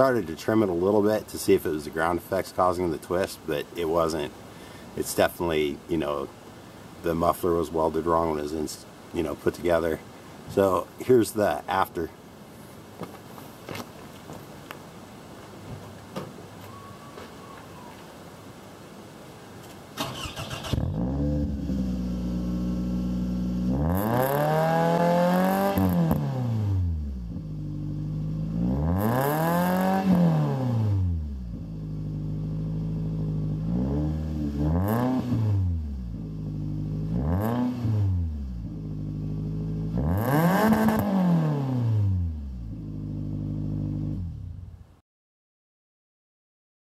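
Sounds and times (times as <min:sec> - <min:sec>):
car engine idling and revving: 0:20.6 - 0:44.8.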